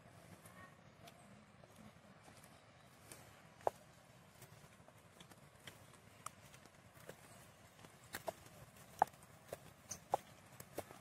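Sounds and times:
footsteps on cobbled path: 0.0 - 11.0.

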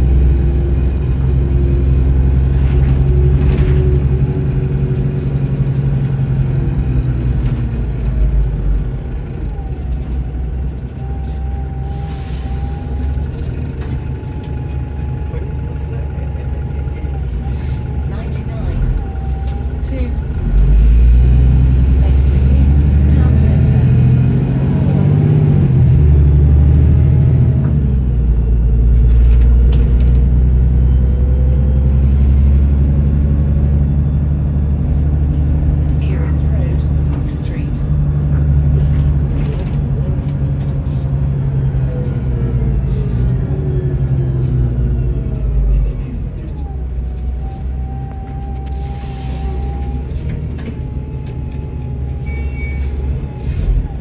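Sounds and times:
bus engine deep rumble: 0.0 - 54.0.

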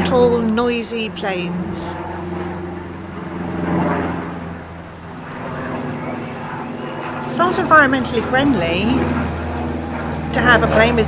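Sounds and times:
light aircraft engine drone: 0.0 - 11.0.

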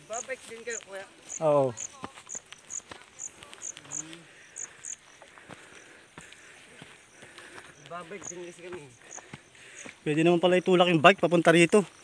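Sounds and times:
footsteps on grassy stony trail: 0.0 - 12.0
insect chirping: 0.0 - 12.0.

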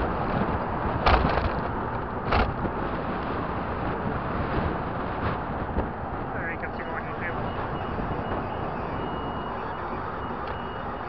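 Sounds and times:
vehicle road and wind noise: 0.0 - 11.0.

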